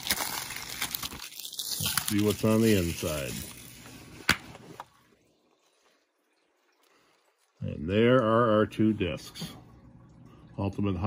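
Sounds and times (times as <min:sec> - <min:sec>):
plastic case crinkling: 0:00.0 - 0:04.9.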